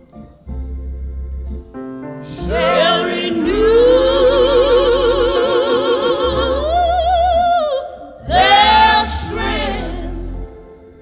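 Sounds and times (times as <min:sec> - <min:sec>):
gospel vocal group singing: 0:02.2 - 0:10.9.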